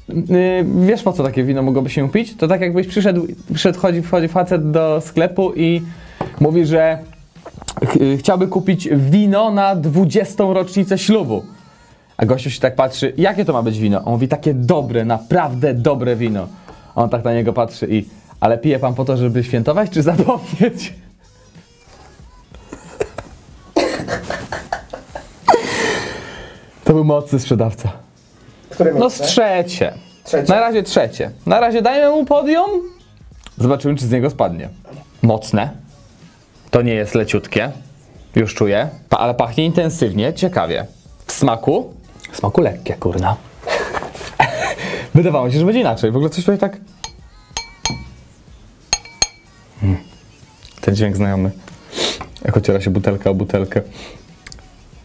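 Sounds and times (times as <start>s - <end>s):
soft background music: 0.0s - 55.0s
man laughing: 20.1s - 21.0s, 22.6s - 25.9s, 43.7s - 45.0s
glass clinking: 47.0s - 48.3s, 48.9s - 49.6s.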